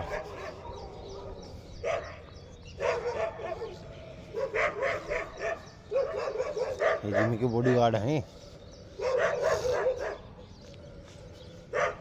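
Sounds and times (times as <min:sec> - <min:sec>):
dog barking: 0:00.0 - 0:08.2, 0:08.9 - 0:10.4, 0:11.7 - 0:12.0.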